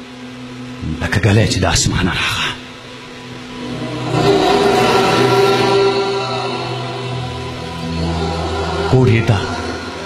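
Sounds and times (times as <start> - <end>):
man chanting over a microphone: 8.8 - 9.8.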